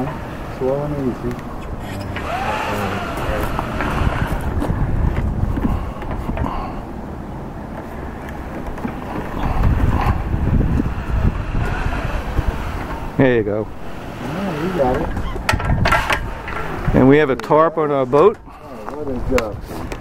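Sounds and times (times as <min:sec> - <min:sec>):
faint voices: 0:00.0 - 0:04.9
wind buffeting microphone: 0:00.0 - 0:20.0.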